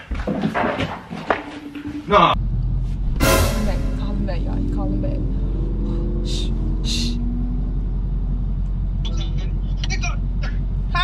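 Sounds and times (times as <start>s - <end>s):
car engine idling: 2.1s - 11.0s.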